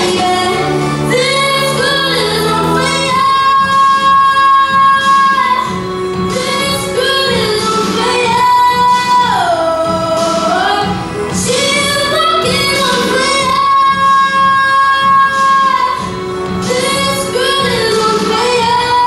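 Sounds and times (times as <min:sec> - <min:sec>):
girl singing into microphone: 0:00.0 - 0:19.0.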